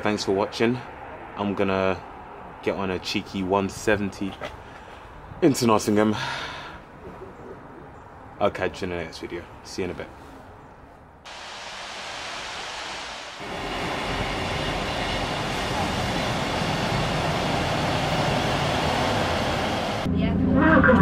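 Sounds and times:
train engine and wheel noise: 9.2s - 21.0s.

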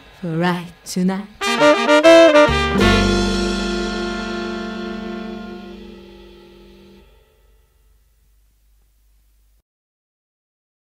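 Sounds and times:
rock band final chord: 1.4s - 7.0s.

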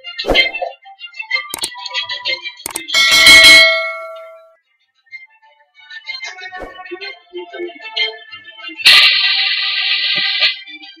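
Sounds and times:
notification bell ringing: 2.7s - 4.6s.

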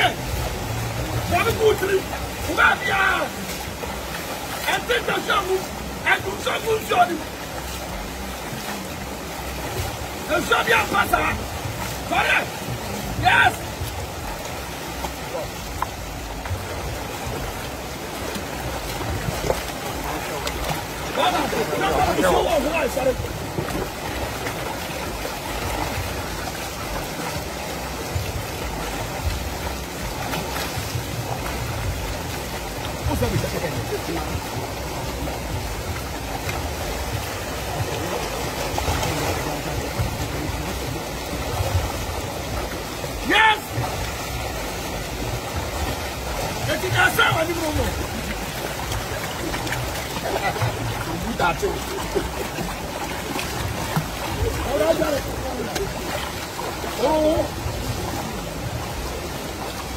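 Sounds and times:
people wading and splashing: 0.0s - 59.9s
river water running over rocks: 0.0s - 59.9s.

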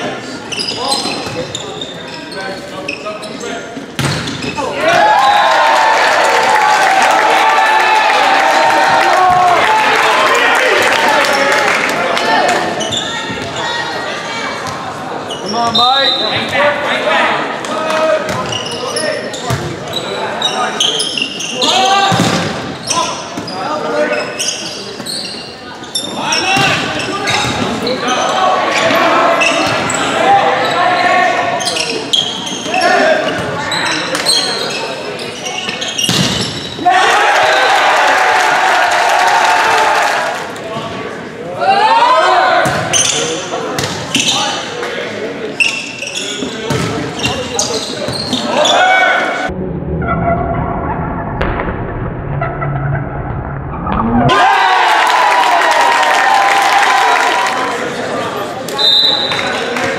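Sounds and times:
people shouting in a gym: 4.5s - 11.4s, 21.5s - 22.3s, 26.0s - 34.6s, 36.8s - 40.3s, 41.5s - 44.6s, 47.3s - 49.5s, 54.3s - 57.8s.

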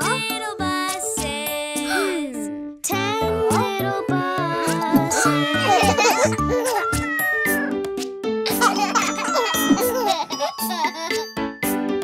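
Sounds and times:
children's song music: 0.0s - 12.0s
cartoon cat meowing: 5.0s - 7.7s, 9.2s - 10.0s.

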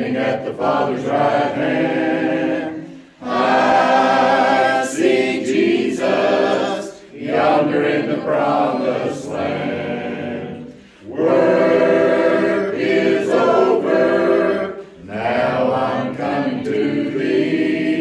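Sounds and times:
congregation singing a hymn: 0.0s - 18.0s.

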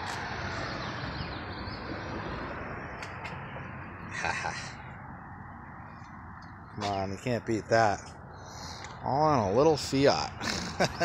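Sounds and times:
street traffic: 0.0s - 11.0s.

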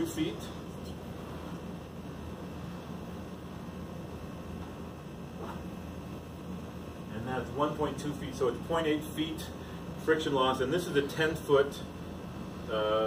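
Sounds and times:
room noise hum and hiss: 0.0s - 13.0s.

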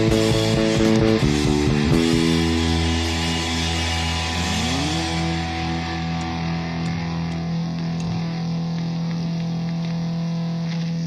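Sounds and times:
bass holding low note: 0.0s - 11.0s
distorted guitars ringing chord: 0.0s - 11.0s.

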